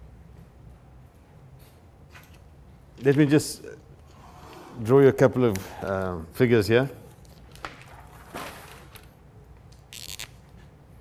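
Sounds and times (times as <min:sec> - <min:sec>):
faint room hum: 0:00.0 - 0:11.0
paper rustling: 0:07.2 - 0:09.2.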